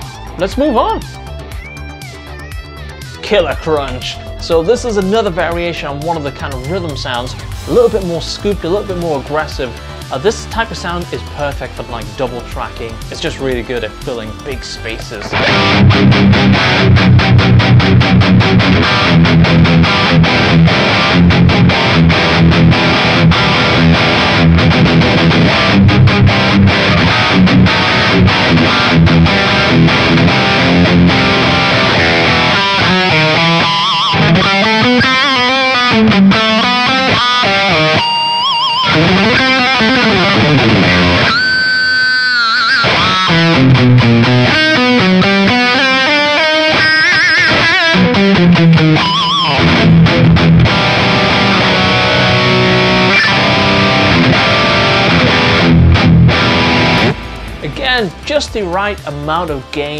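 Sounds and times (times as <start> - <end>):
distorted electric guitar: 0.0 - 59.9.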